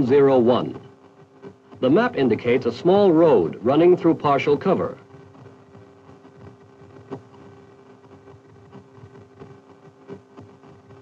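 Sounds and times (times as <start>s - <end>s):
steady hum: 0.0s - 11.0s
crackling and clicks: 3.5s - 11.0s.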